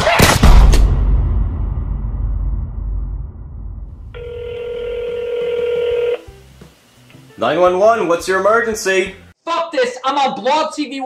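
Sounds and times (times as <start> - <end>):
telephone ringback tone: 4.2 - 6.3.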